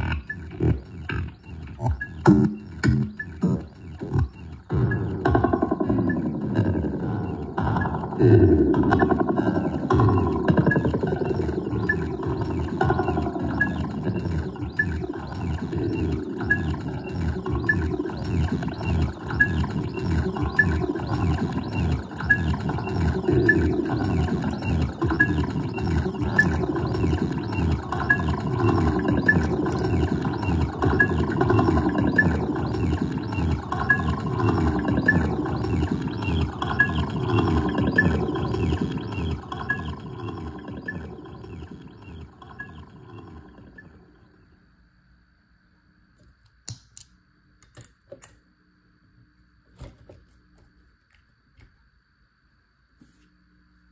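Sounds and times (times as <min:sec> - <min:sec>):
chopped stuttering electronic tone: 0:00.0 - 0:44.5.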